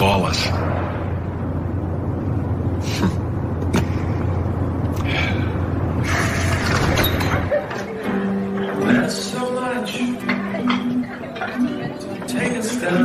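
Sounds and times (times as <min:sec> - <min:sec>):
car engine idling: 0:00.0 - 0:07.5.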